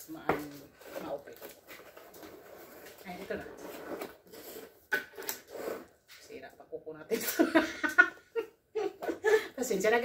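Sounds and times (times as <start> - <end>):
cardboard box lid scraping: 1.9 - 5.9.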